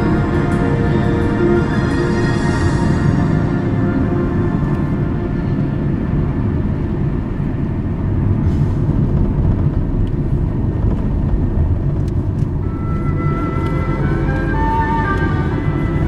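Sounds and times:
car engine and tyre rumble: 0.0s - 16.0s.

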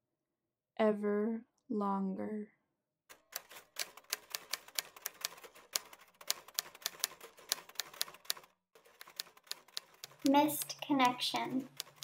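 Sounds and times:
typewriter keys clacking: 3.1s - 12.0s.

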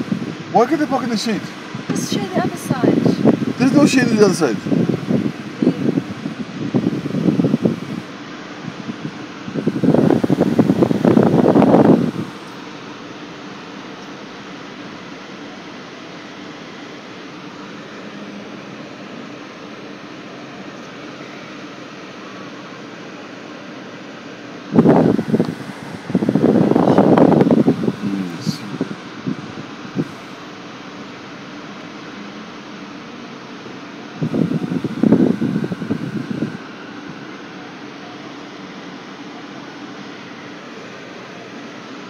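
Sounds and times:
loud bursts of noise: 0.0s - 13.9s, 14.8s - 32.6s, 33.4s - 42.0s
car air conditioning fan: 0.0s - 42.0s.

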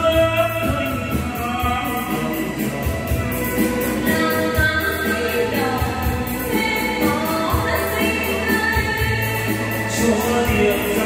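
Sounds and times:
backing track with bass beat: 0.0s - 11.0s
people singing into microphones: 0.0s - 11.0s.

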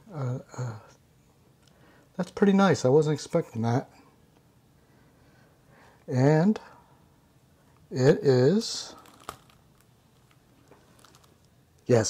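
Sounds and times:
plastic packaging handled: 8.7s - 11.5s.

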